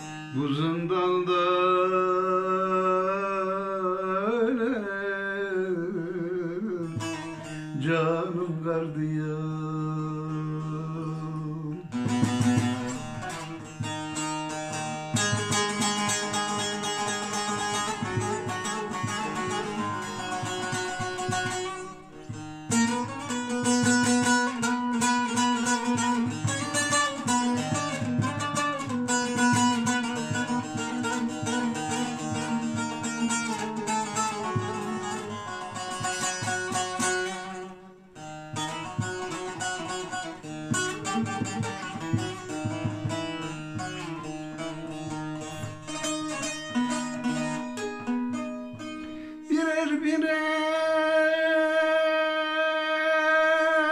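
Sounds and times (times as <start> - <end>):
long-necked lute picked rapidly: 10.1 - 50.0.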